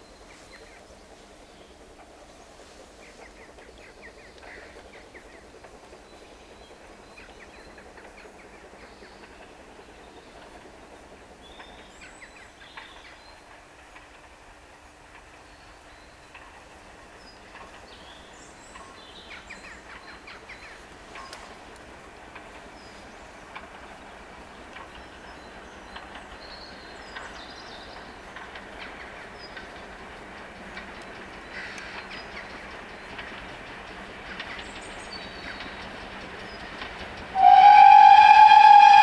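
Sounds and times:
distant steam train rumble: 0:00.0 - 0:39.0.

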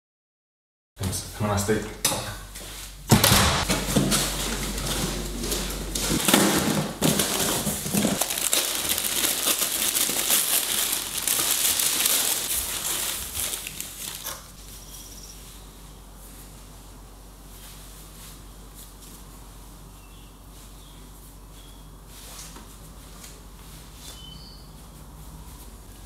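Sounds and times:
cardboard box rustling: 0:03.7 - 0:14.4
tissue paper crinkling: 0:05.4 - 0:14.6.

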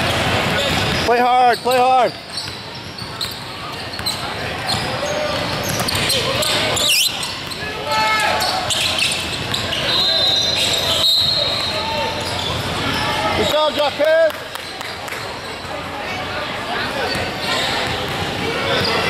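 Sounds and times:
sneakers squeaking: 0:00.0 - 0:19.0.

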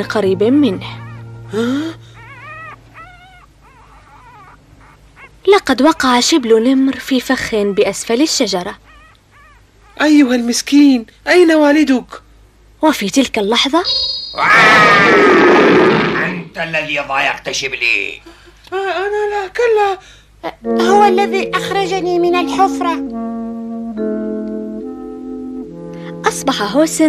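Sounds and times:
tiger cub whimpering: 0:00.6 - 0:06.6, 0:07.4 - 0:10.3
tiger roaring: 0:13.9 - 0:16.5.

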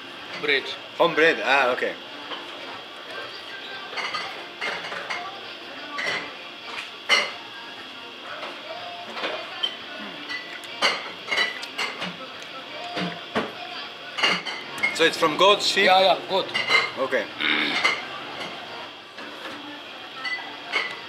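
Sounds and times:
plates and dishes clinking: 0:03.6 - 0:05.3, 0:05.9 - 0:07.4, 0:08.4 - 0:12.2, 0:14.2 - 0:15.0, 0:16.4 - 0:19.6, 0:20.2 - 0:21.0
hum of voices: 0:07.4 - 0:10.8, 0:17.3 - 0:20.7.

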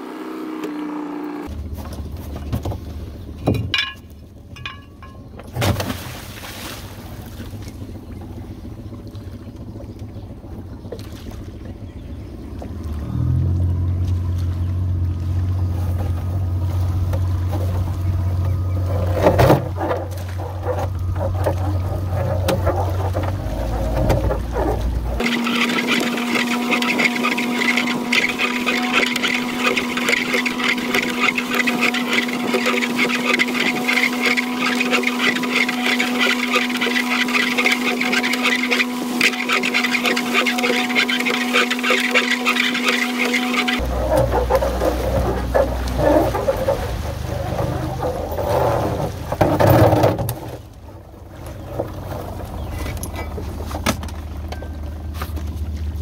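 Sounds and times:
outboard motor running: 0:00.0 - 0:56.0
water churning: 0:01.5 - 0:56.0.

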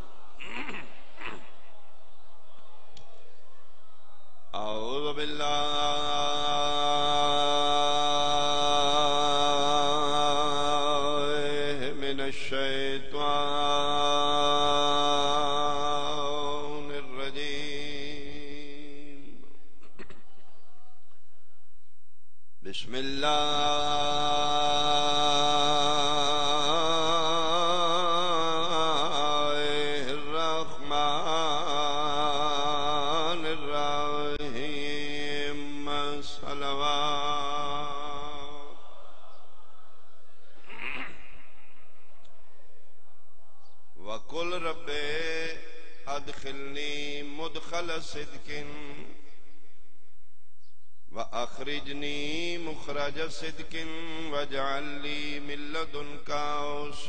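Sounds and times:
man chanting through a microphone: 0:00.0 - 0:21.6, 0:22.6 - 0:49.6, 0:51.1 - 0:57.0.

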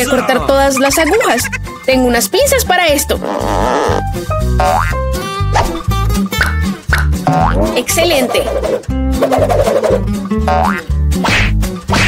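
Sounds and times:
playful background music: 0:00.0 - 0:12.0
cartoon boing sound effect: 0:07.3 - 0:08.0, 0:10.5 - 0:11.5.

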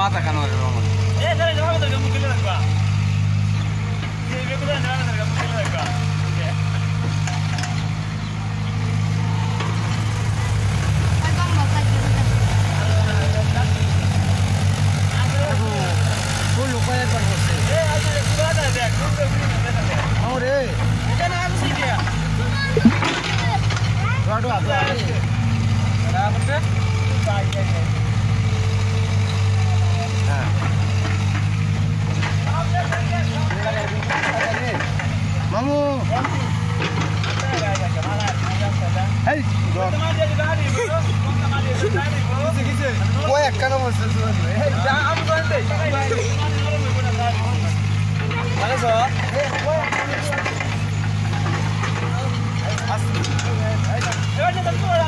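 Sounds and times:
excavator diesel engine running: 0:00.0 - 0:55.0
voices talking: 0:00.0 - 0:55.0.

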